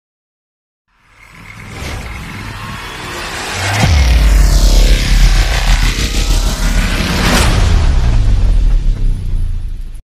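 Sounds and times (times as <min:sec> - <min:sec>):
rushing swell of noise: 0:01.0 - 0:09.7
deep boom: 0:01.6 - 0:10.0.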